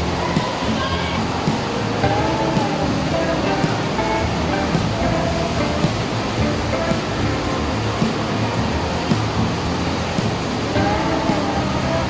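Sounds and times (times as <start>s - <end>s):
background music: 0.0s - 12.0s
water rushing in channels: 0.0s - 12.0s.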